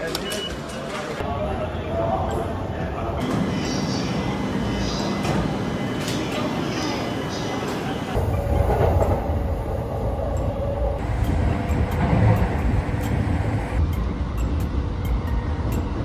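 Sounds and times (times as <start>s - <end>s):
train rumble with wheel clatter: 2.4s - 16.0s.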